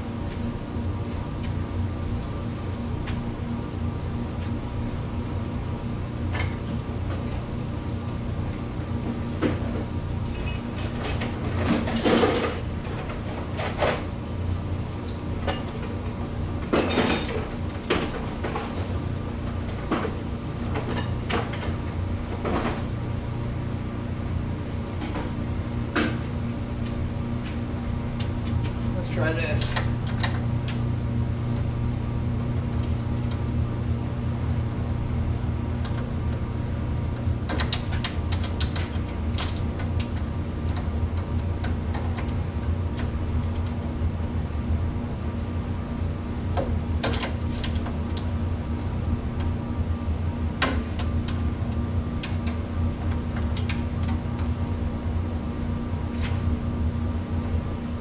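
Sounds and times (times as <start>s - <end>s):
low mechanical hum: 0.0s - 58.0s.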